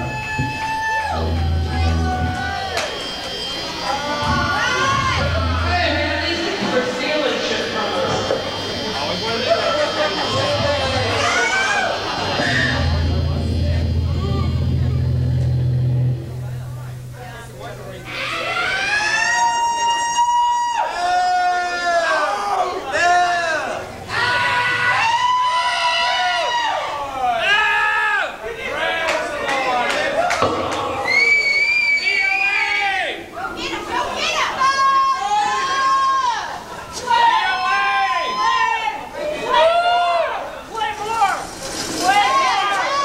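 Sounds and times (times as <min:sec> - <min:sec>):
rock band amplified drone: 0:00.0 - 0:20.9, 0:21.7 - 0:26.9, 0:30.2 - 0:32.5.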